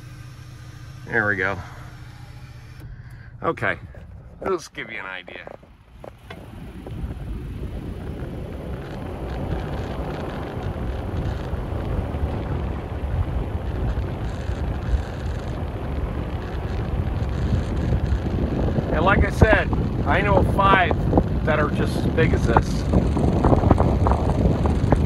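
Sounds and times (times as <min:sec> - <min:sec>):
low road rumble: 0:00.0 - 0:25.0
wind rushing over microphone: 0:02.8 - 0:25.0.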